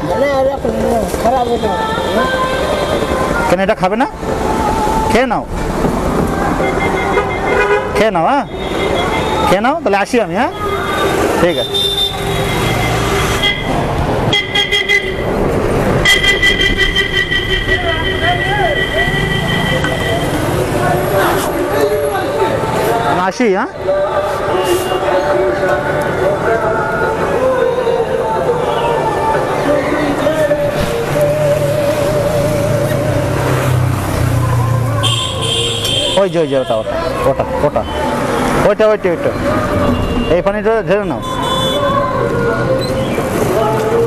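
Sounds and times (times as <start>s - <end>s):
vehicle horns honking: 1.2s - 3.4s, 6.6s - 9.6s, 10.5s - 15.4s, 16.0s - 22.1s, 24.5s - 25.4s, 35.0s - 37.1s, 39.7s - 42.1s.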